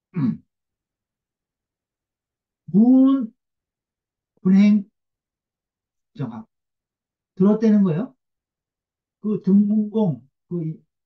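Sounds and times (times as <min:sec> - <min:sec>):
man clearing throat: 0:00.1 - 0:00.4.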